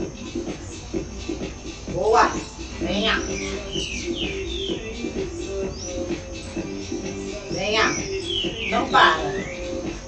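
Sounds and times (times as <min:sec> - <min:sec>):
electronic workout music: 0:00.0 - 0:10.0.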